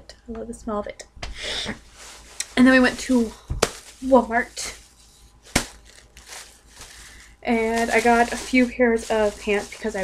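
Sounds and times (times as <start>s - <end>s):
plastic bag rustling: 1.8s - 10.0s.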